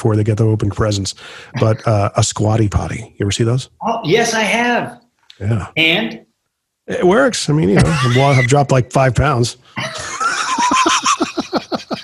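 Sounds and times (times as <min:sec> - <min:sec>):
men laughing: 0:07.6 - 0:08.8, 0:09.8 - 0:12.0
high wavering laugh: 0:07.8 - 0:08.7, 0:09.8 - 0:12.0.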